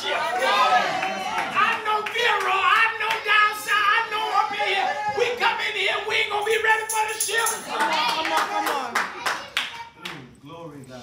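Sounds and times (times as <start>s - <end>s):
hand claps: 1.4s - 3.3s, 6.9s - 10.2s.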